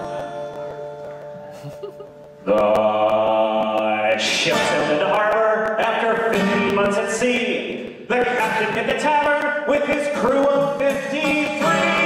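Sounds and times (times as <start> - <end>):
acoustic guitar strumming: 0.0 - 12.0
men singing: 2.5 - 12.0.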